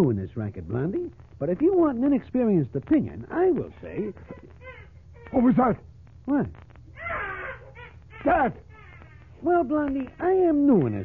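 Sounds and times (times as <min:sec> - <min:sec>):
baby crying: 0:04.0 - 0:05.5, 0:06.9 - 0:09.6.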